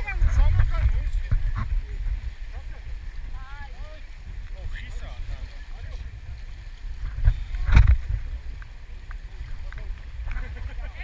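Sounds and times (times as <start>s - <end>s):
river water rumbling and sloshing: 0.0s - 11.0s.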